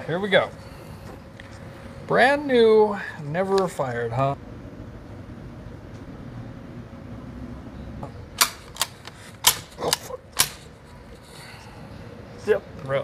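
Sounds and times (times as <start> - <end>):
low room hum: 0.0 - 13.0
shotgun action metallic clicks: 8.4 - 10.6.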